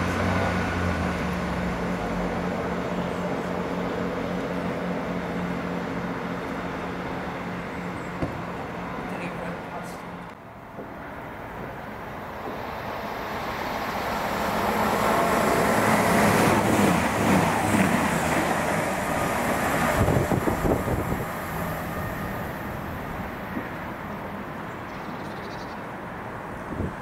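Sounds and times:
passenger train passing: 0.0s - 27.0s.

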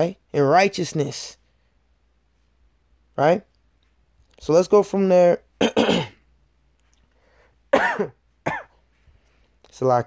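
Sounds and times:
man clearing his throat: 5.6s - 6.3s, 7.7s - 8.8s
man coughing: 5.6s - 6.3s, 7.7s - 8.8s.

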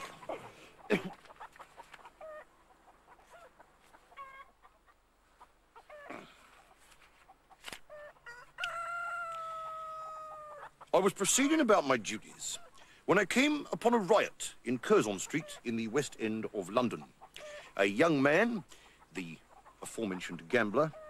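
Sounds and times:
rooster crowing: 7.9s - 10.7s.

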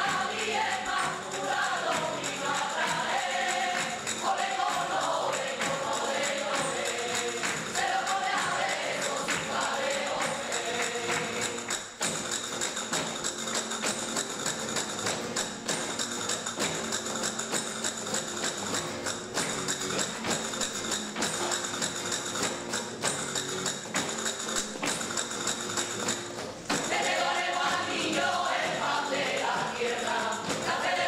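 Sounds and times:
percussion beat: 0.0s - 31.0s.

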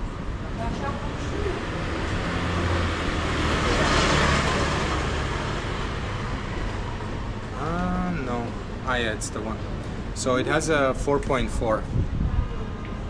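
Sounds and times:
vehicle driving past: 0.8s - 8.6s.

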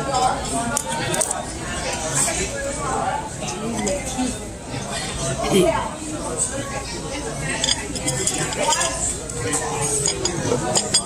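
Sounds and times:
cutlery and dishes clinking: 0.0s - 1.4s, 3.6s - 4.2s, 7.5s - 11.0s
overlapping voices chattering: 0.0s - 11.0s.

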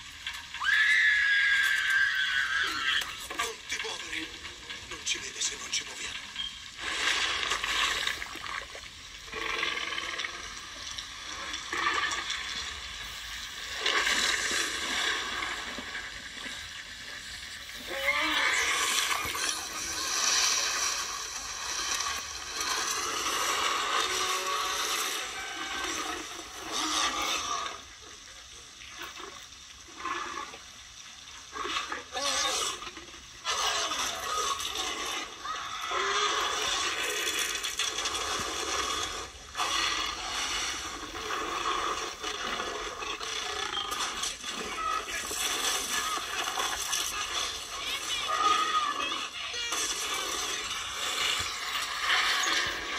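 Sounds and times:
heavy rain: 0.0s - 28.1s
dinosaur growling and roaring: 17.8s - 28.0s, 31.5s - 52.9s.

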